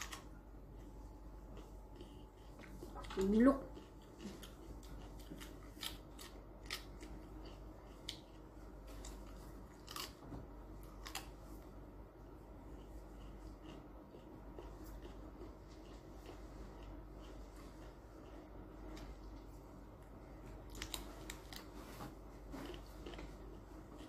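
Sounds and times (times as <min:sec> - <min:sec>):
crunching cucumber bites: 0:03.8 - 0:11.6.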